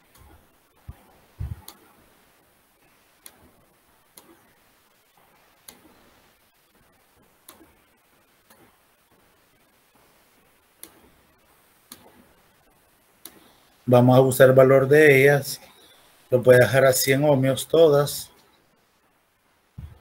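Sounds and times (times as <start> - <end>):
computer mouse clicks: 1.6 - 1.8, 10.8 - 11.1, 11.9 - 12.2.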